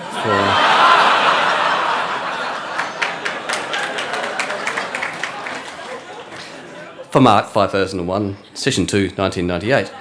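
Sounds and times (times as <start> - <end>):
large audience laughing: 0.0 - 7.2
sharp claps: 2.7 - 6.6.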